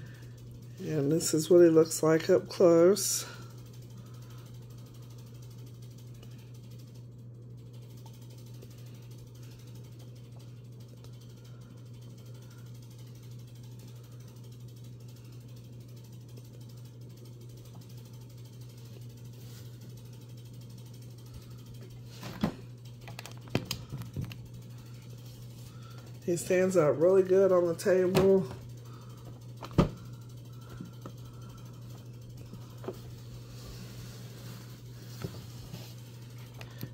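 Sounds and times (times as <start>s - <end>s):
steady low hum: 0.0s - 36.9s.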